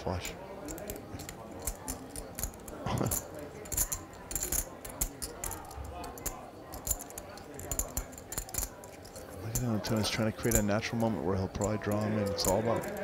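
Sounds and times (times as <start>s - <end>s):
poker chips clicking: 0.1s - 10.7s.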